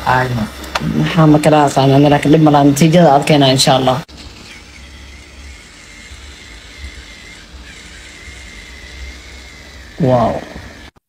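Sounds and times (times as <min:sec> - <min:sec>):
electric cleansing brush whining: 0:00.0 - 0:11.0.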